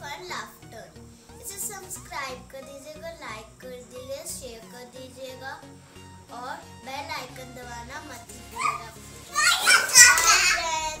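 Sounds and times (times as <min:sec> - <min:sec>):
girl talking: 0:00.0 - 0:05.7, 0:06.3 - 0:11.0
background music: 0:00.0 - 0:11.0.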